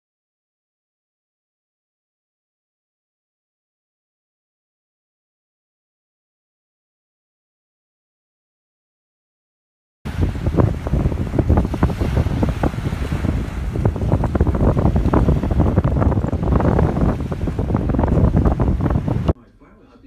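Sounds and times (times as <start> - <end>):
waves breaking on shore: 10.1 - 19.4
wind buffeting microphone: 10.1 - 19.4.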